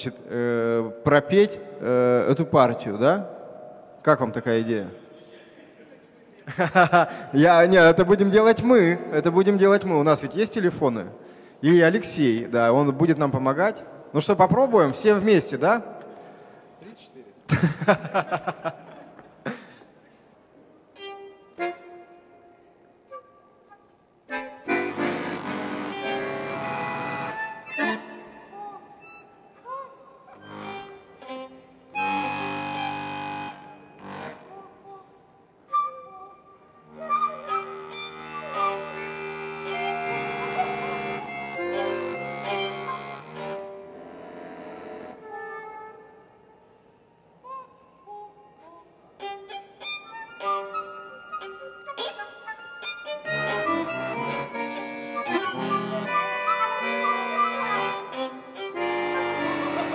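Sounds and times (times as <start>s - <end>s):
violin: 20.9s - 22.3s, 24.3s - 35.0s, 36.9s - 46.2s, 47.4s - 59.9s
button accordion: 21.0s - 22.2s, 24.3s - 29.4s, 30.3s - 35.0s, 37.2s - 45.8s, 49.4s - 59.9s
flute: 23.0s - 31.4s, 32.0s - 43.8s, 45.1s - 46.6s, 47.3s - 59.9s.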